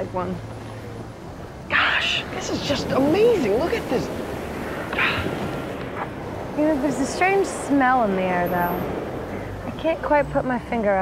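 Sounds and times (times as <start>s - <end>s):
outdoor background hiss by sea: 0.0s - 11.0s.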